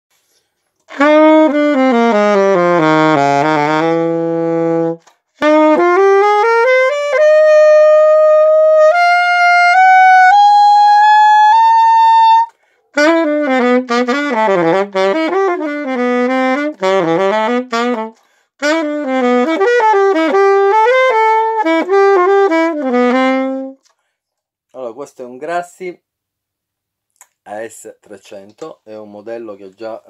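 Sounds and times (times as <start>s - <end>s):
alto saxophone playing: 0.9s - 23.9s.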